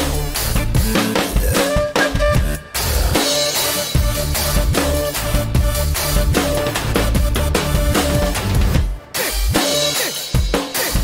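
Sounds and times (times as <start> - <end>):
acoustic drum kit: 0.0 - 11.0
electronic dance track: 0.0 - 11.0.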